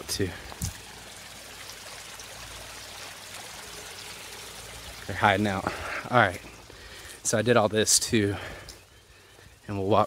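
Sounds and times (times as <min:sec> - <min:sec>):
water trickling over rocks: 0:00.0 - 0:10.0.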